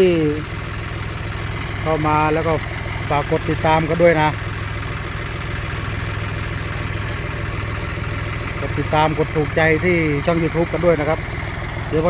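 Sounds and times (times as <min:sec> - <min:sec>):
tractor diesel engine idling: 0:00.0 - 0:12.0.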